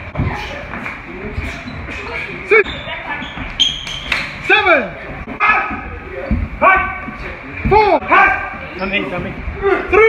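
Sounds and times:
high squeak: 1.4 - 4.2.

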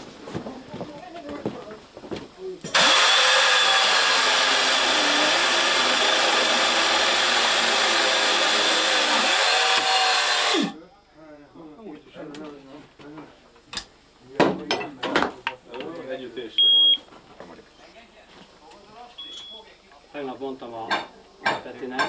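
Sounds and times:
power tool running: 2.7 - 10.8.

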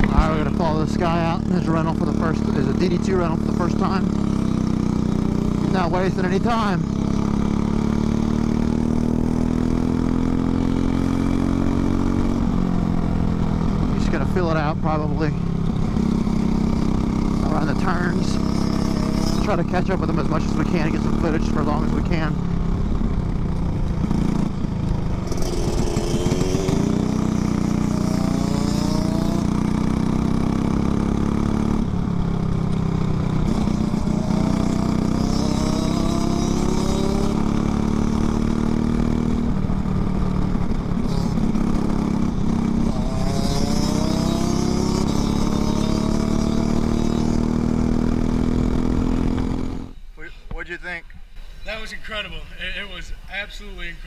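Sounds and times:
kart engine running hard: 0.0 - 50.0.

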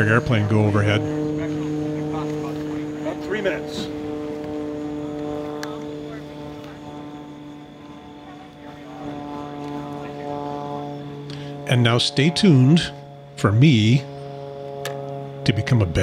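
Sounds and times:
airplane passing overhead: 0.0 - 16.0.

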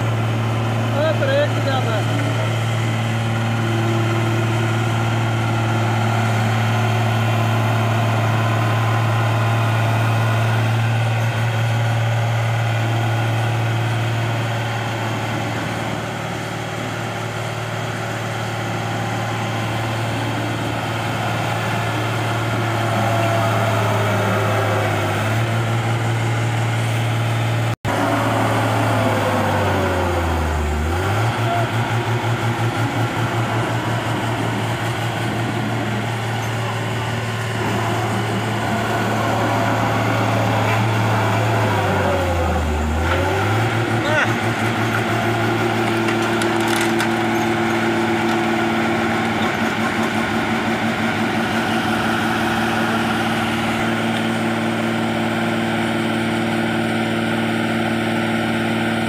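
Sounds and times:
road roller diesel engine: 0.0 - 59.0.

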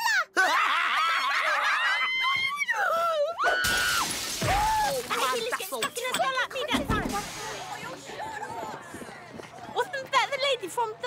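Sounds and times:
glass cracking and shattering: 3.6 - 6.3.

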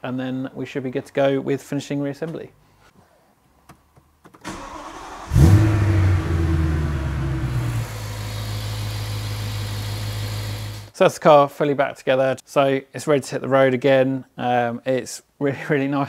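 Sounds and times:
engine starter cranking: 4.4 - 6.5
car engine revving and idling: 5.0 - 10.9.

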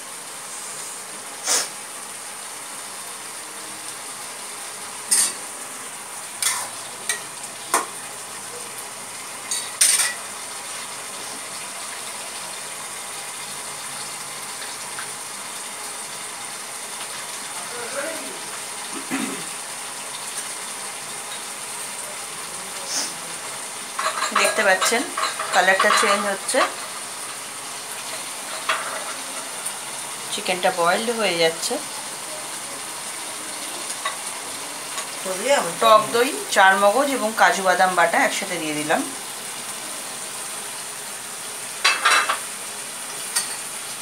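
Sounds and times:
gravy bubbling and sizzling: 0.0 - 44.0.

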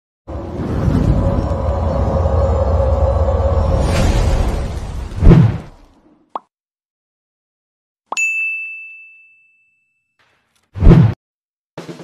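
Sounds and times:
bright bell ding: 8.2 - 10.1.

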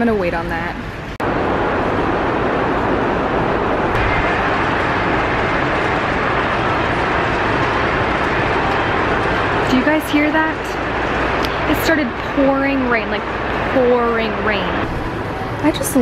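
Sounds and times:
heavy rain on a roof: 0.0 - 16.0.

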